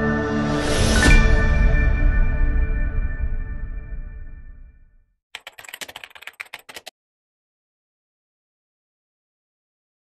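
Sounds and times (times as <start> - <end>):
keyboard typing clicks: 5.4 - 6.9.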